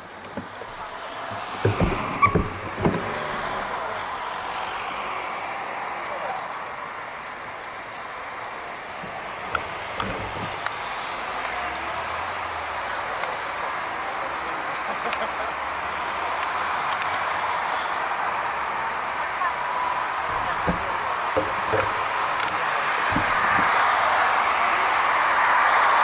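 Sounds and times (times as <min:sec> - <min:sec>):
passing car traffic: 0:00.0 - 0:26.0
sharp knocks: 0:01.3 - 0:03.6, 0:20.3 - 0:22.2, 0:23.1 - 0:23.9.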